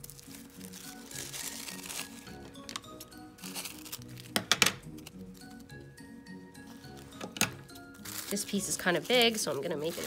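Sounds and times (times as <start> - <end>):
tissue paper rustling: 0.0 - 4.3, 7.8 - 10.0
scissors cutting tissue paper: 0.0 - 5.2, 6.7 - 10.0
background music: 0.0 - 10.0.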